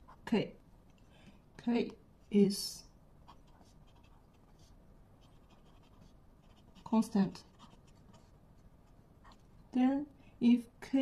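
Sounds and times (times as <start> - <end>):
pen scratching on paper: 3.2 - 9.5.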